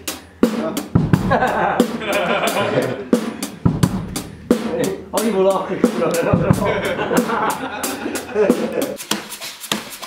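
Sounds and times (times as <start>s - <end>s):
drum kit playing: 0.0s - 10.0s
laughter: 1.3s - 3.6s, 6.2s - 9.0s.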